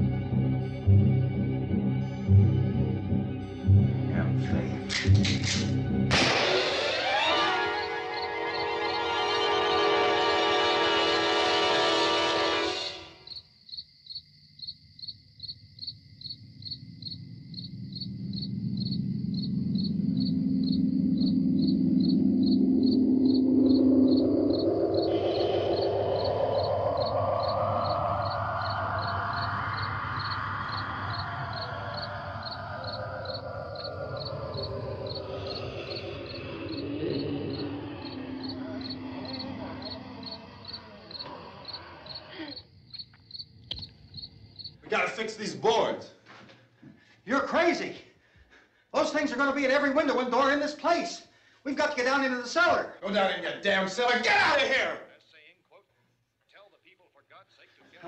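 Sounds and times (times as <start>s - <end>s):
eerie film score: 0.0s - 54.5s
crickets chirping: 0.0s - 55.1s.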